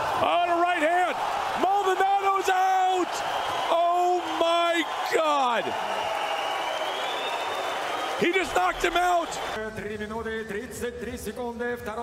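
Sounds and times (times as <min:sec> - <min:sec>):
crowd noise: 0:00.0 - 0:09.6
man shouting excitedly: 0:00.2 - 0:05.7, 0:08.2 - 0:09.5.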